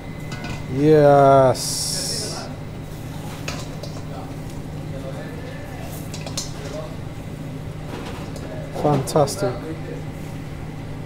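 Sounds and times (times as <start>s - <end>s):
low kitchen hum: 0.0s - 11.0s.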